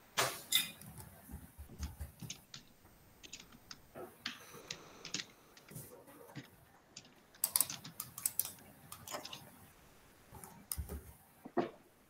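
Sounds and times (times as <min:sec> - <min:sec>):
keyboard typing clicks: 0:06.4 - 0:09.4.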